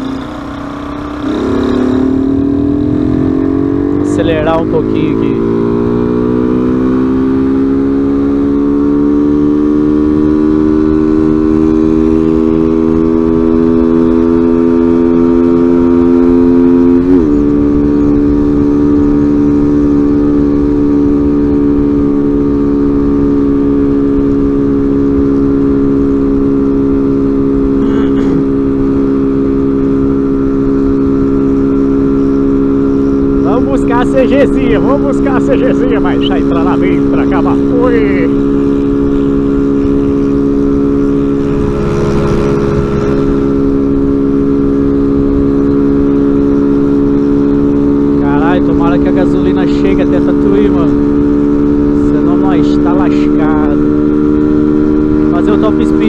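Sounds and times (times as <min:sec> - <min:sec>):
motorcycle engine under throttle: 0:00.0 - 0:56.0.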